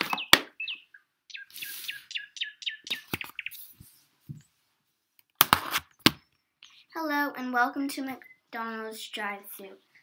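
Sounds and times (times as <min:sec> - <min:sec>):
small bird chirping: 0:00.0 - 0:04.6, 0:05.9 - 0:07.0, 0:08.0 - 0:08.8.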